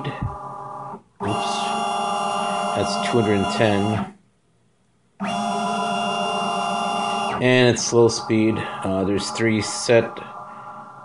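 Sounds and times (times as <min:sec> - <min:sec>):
stepper motors whining: 0:01.2 - 0:04.1, 0:05.2 - 0:11.0.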